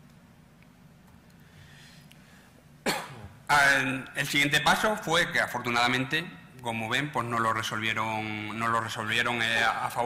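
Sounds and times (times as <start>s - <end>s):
faint low room hum: 0.0s - 10.0s
man coughing: 2.8s - 3.4s.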